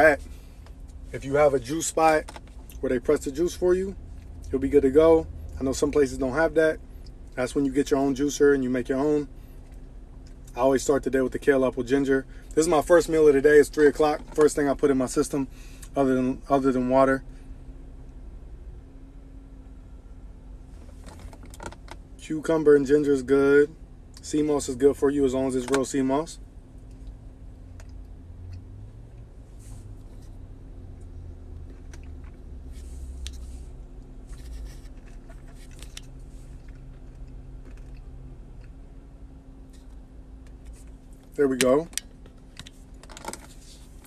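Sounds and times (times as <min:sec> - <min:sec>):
low steady rumble: 0:00.0 - 0:44.0.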